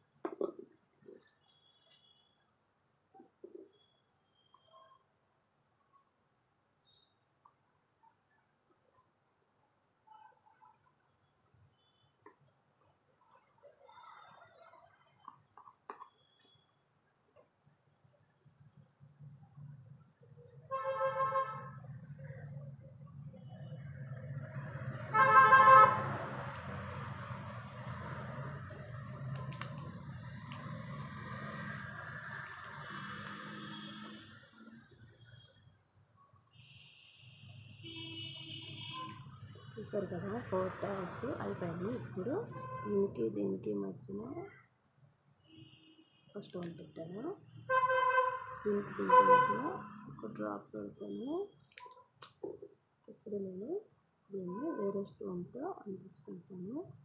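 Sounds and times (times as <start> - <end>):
vehicle horn honk: 25.1 - 26.1, 36.6 - 39.2, 47.7 - 49.6
people talking: 39.8 - 44.6, 46.4 - 47.4, 48.7 - 51.5, 52.2 - 56.9.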